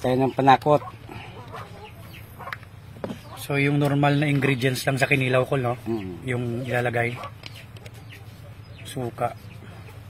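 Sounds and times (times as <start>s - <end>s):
faint chicken clucking: 0.0s - 10.0s.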